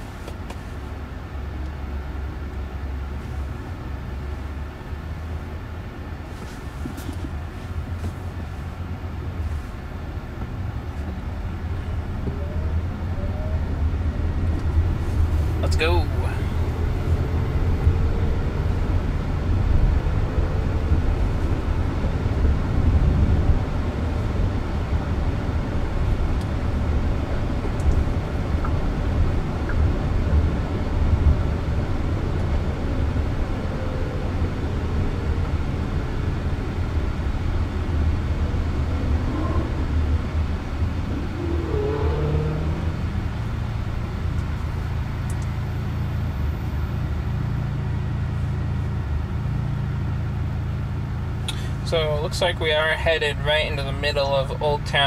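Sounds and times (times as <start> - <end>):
road and tyre rumble in car cabin: 0.0 - 55.0.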